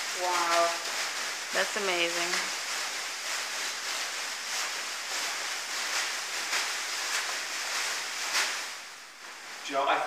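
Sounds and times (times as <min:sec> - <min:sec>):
costume rustling and swishing: 0:00.0 - 0:10.0.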